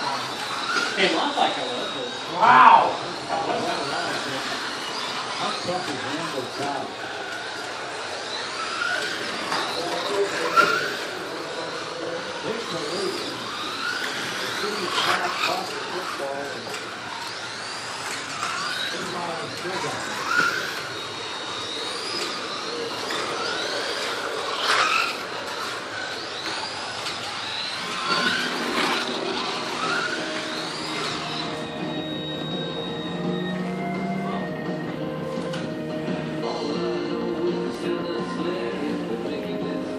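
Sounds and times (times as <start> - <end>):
slot car motors whining: 0.0 - 39.9
music: 31.5 - 39.9.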